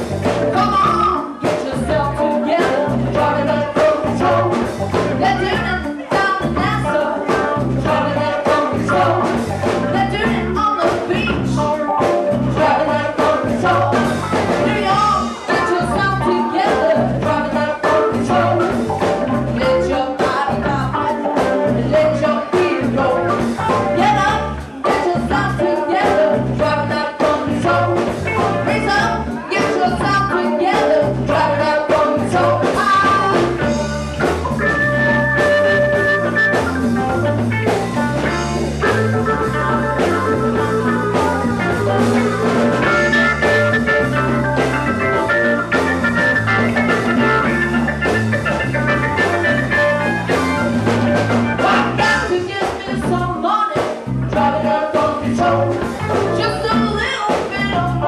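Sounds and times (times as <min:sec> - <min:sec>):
bass guitar: 0:00.0 - 0:58.0
congas: 0:00.0 - 0:58.0
drums: 0:00.0 - 0:58.0
electric guitar: 0:00.0 - 0:58.0
keyboard: 0:00.0 - 0:58.0.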